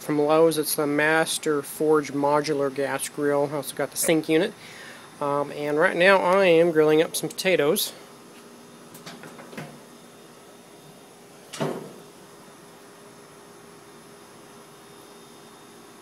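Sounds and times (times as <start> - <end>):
faint steady hum: 0.0 - 16.0
metal grill lid clunk: 11.5 - 12.0.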